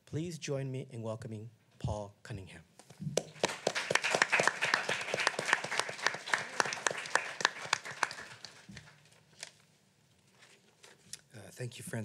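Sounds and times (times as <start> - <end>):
audience applauding: 3.2 - 9.0.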